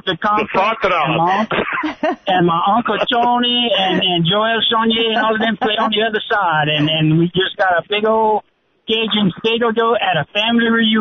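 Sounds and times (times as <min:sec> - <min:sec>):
man talking over radio: 0:00.0 - 0:01.7, 0:02.3 - 0:11.0.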